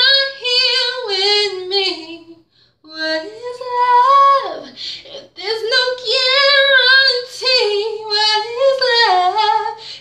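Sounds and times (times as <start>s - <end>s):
woman singing unaccompanied: 0.0s - 10.0s.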